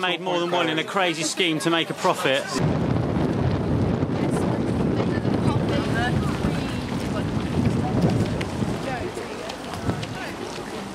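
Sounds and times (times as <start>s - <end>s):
wind buffeting microphone: 2.6s - 10.9s
faint voices: 4.1s - 10.9s.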